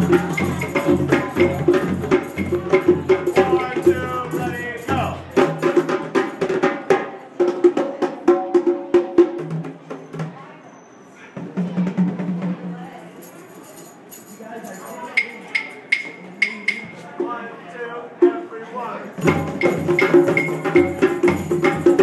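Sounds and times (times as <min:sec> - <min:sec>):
hand drums played: 0:00.0 - 0:10.4, 0:15.2 - 0:17.4, 0:19.2 - 0:22.0
person speaking: 0:03.4 - 0:05.3.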